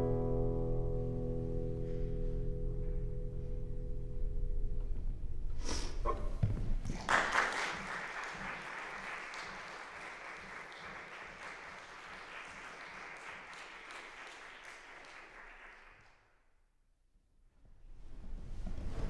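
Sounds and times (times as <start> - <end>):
audience applauding: 6.8 - 16.2.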